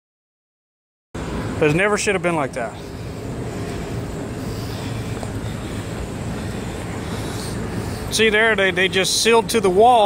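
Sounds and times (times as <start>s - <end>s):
rushing noise: 1.2s - 9.7s
low mechanical hum: 1.2s - 10.0s.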